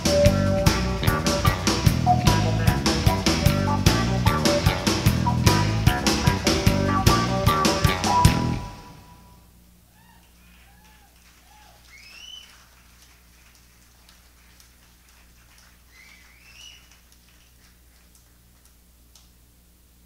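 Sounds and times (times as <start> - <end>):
low electrical hum: 0.0 - 20.0
faint whistling: 10.6 - 12.6, 15.9 - 17.0.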